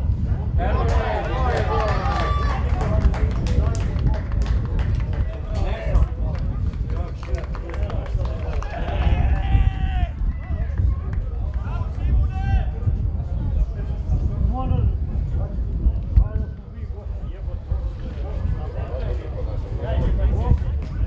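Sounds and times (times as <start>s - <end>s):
steady low rumble: 0.0s - 21.0s
players shouting: 0.6s - 3.0s.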